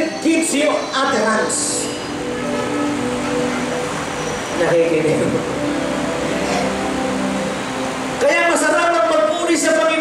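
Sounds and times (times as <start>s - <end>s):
soft sustained chords music: 0.0s - 10.0s.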